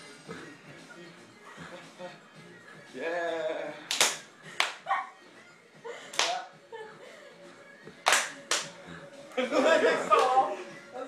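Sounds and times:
sharp hand smacks: 3.9s - 4.8s, 6.1s - 6.4s, 8.0s - 8.8s.

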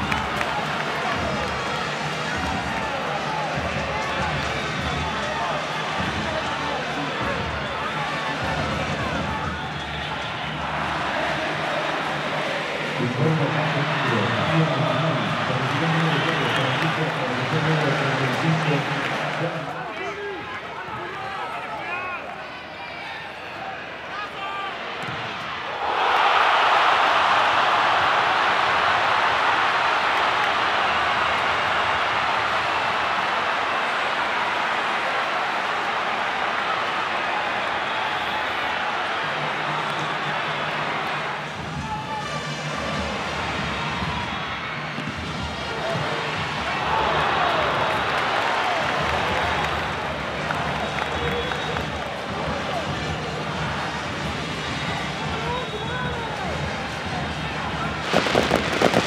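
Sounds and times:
stadium crowd roaring: 0.0s - 59.0s.

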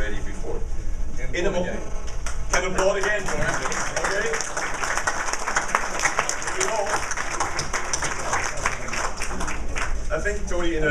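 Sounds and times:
audience applauding: 2.2s - 10.1s.

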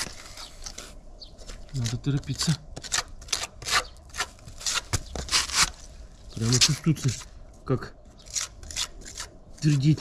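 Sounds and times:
putty knife scraping mortar: 1.7s - 5.8s, 8.3s - 10.0s.

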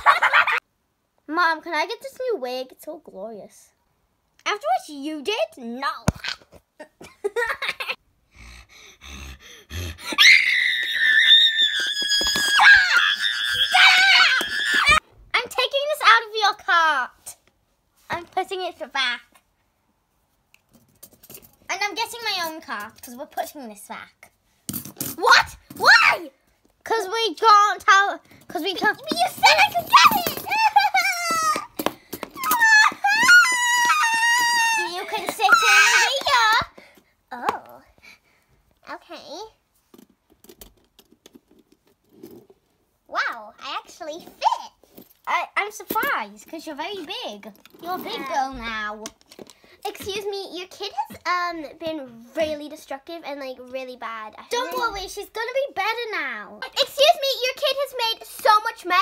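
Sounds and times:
person screaming high-pitched: 9.8s - 15.0s, 32.4s - 36.4s.

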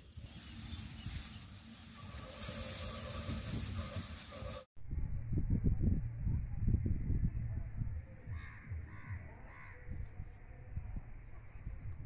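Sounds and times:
low rumble: 4.8s - 12.0s.

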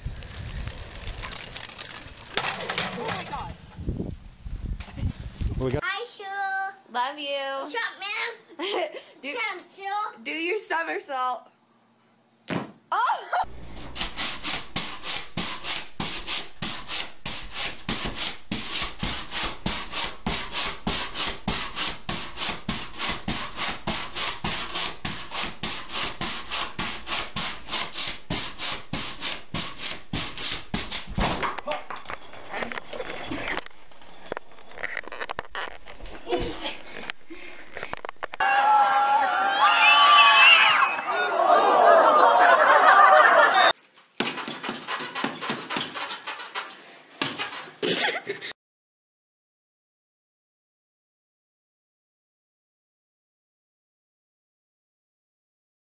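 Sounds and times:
person laughing: 8.5s - 9.2s, 12.9s - 13.5s, 36.2s - 37.6s, 47.5s - 48.6s
pogo stick bouncing on floor: 14.0s - 32.8s, 44.2s - 48.1s.

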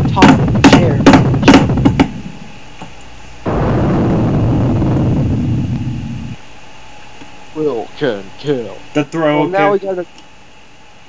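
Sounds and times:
low deep sound effect: 3.5s - 6.4s.

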